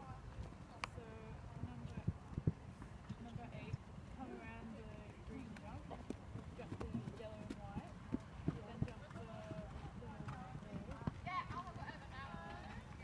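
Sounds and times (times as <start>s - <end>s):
people talking quietly: 0.0s - 13.0s
hoofbeats on sand: 5.0s - 13.0s.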